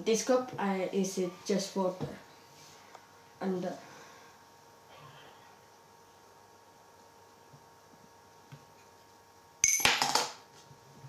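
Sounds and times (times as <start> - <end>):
coin clinking in cup: 9.6 - 10.4.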